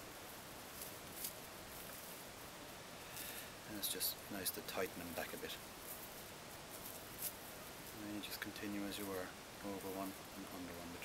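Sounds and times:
rope rustling: 0.0s - 11.0s
steady low hiss: 0.0s - 11.0s.

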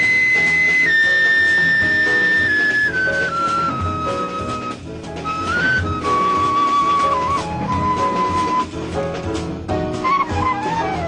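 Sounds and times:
bass: 0.0s - 11.0s
piano chords: 0.0s - 11.0s.

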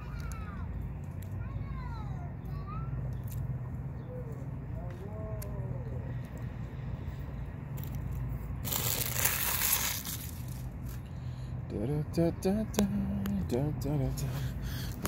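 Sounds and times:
distant children's voices: 0.0s - 6.2s
low steady rumble: 0.0s - 15.0s.

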